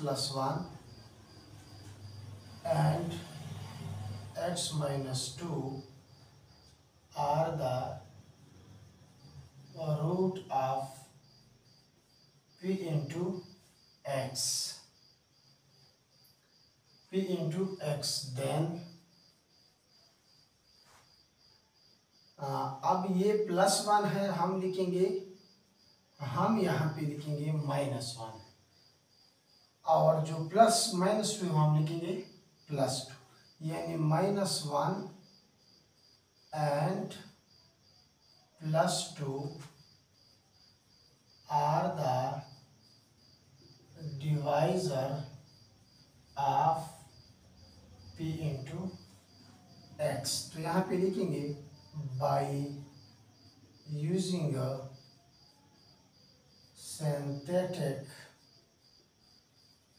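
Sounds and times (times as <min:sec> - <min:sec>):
man talking: 0:00.0 - 0:00.8, 0:02.6 - 0:03.5, 0:04.3 - 0:05.9, 0:07.2 - 0:08.1, 0:09.8 - 0:11.1, 0:12.6 - 0:13.5, 0:14.1 - 0:14.8, 0:17.1 - 0:18.9, 0:22.4 - 0:25.2, 0:26.2 - 0:28.5, 0:29.9 - 0:35.2, 0:36.6 - 0:37.2, 0:38.6 - 0:39.7, 0:41.5 - 0:42.5, 0:44.0 - 0:45.4, 0:46.4 - 0:47.1, 0:48.2 - 0:49.0, 0:50.0 - 0:52.9, 0:53.9 - 0:54.8, 0:56.8 - 0:58.3
crickets chirping: 0:00.0 - 0:59.9
man's voice: 0:50.0 - 0:52.8.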